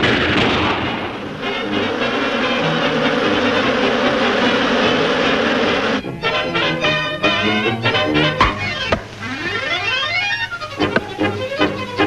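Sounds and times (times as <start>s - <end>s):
loud rushing noise: 0.0s - 6.0s
sustained orchestral notes: 0.9s - 12.0s.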